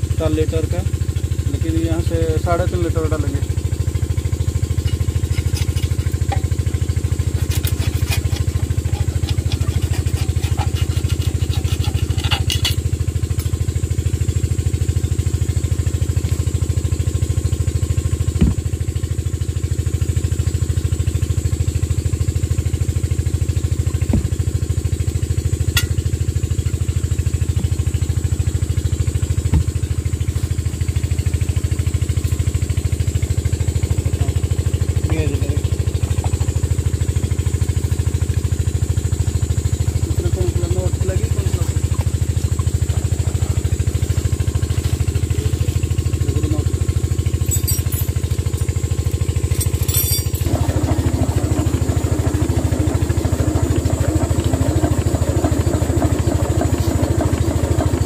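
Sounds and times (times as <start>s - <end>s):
diesel engine idling: 0.0s - 9.7s, 12.6s - 58.0s.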